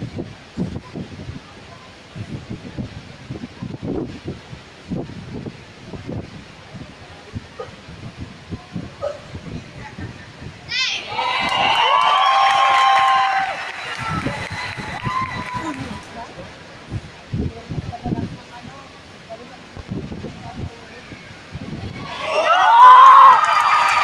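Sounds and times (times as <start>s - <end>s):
crowd murmuring and talking: 0.0s - 24.0s
crowd cheering and shouting: 10.7s - 16.4s, 21.0s - 24.0s.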